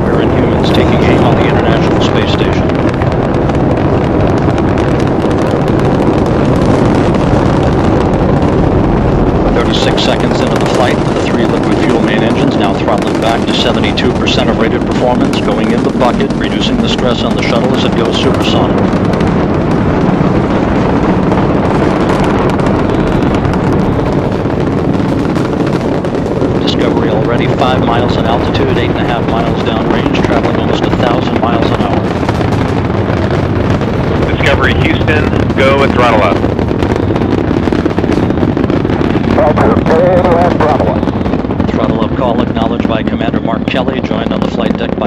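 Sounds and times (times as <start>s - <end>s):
rocket engines crackling rumble: 0.0s - 45.0s
person speaking: 9.6s - 18.8s.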